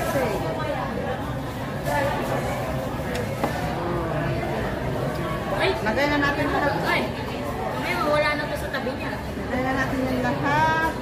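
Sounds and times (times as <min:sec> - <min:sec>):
people talking: 0:00.0 - 0:11.0
restaurant chatter: 0:00.0 - 0:11.0.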